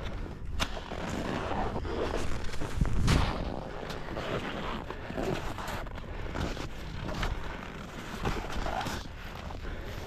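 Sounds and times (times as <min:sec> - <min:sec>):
skis scraping over snow: 0:00.7 - 0:10.0.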